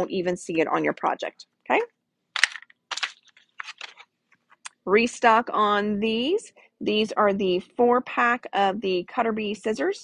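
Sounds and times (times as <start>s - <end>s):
plastic packaging crinkling: 2.4s - 4.1s.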